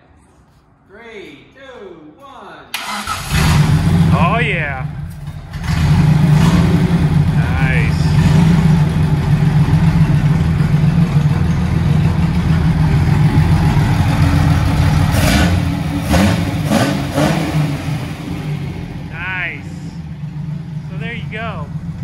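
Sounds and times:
engine throttle blips: 0:02.8 - 0:22.0
car engine running loudly: 0:05.5 - 0:22.0.

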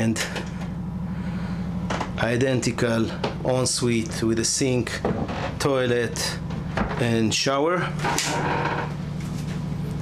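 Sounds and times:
steady low hum: 0:00.0 - 0:10.0
shower door scraping open: 0:05.1 - 0:05.6, 0:08.0 - 0:09.0.

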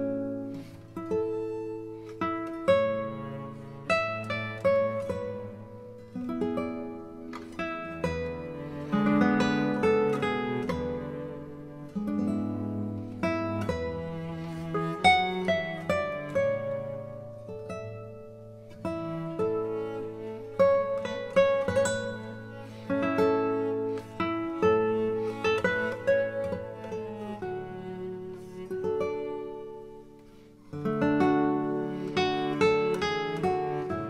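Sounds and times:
acoustic guitar plucking and strumming: 0:00.0 - 0:34.0.

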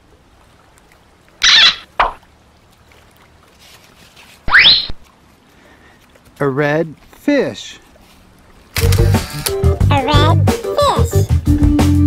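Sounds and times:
sharp click: 0:08.8 - 0:09.6.

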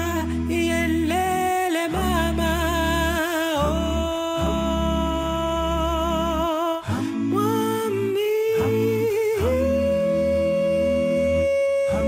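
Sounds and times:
low sustained bass: 0:00.0 - 0:12.0.

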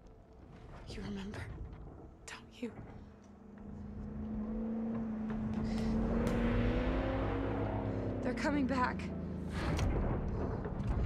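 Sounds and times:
low rumble: 0:00.1 - 0:11.0
low rising tone: 0:03.3 - 0:10.5.

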